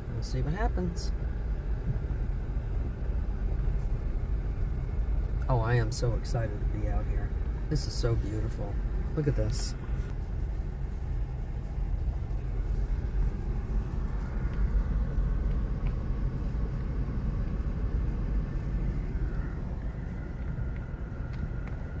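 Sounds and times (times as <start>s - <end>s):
car engine and tyres rumbling: 0.0s - 22.0s
faint steady whine: 0.0s - 22.0s.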